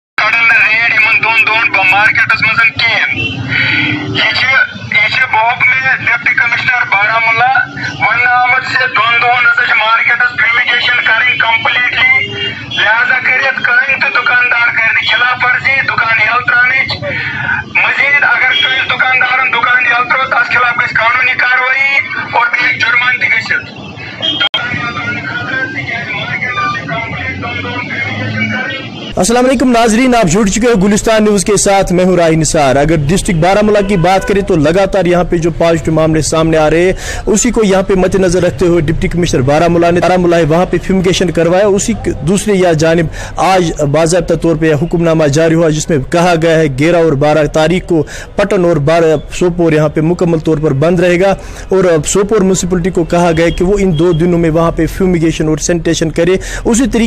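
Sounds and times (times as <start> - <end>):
voice over horn loudspeaker: 0.2 - 36.8.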